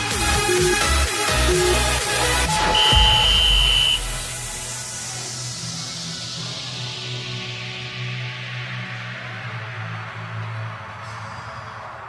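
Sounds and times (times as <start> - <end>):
electronic dance music: 0.0 - 11.0
interval timer beeps: 2.5 - 4.1.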